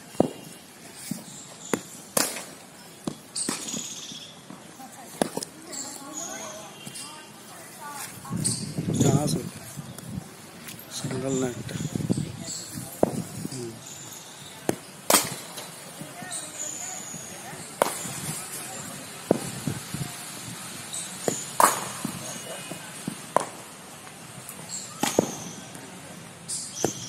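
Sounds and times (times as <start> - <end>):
cricket bat striking ball: 13.0 - 13.3, 19.2 - 19.6, 21.2 - 23.7, 25.0 - 25.6.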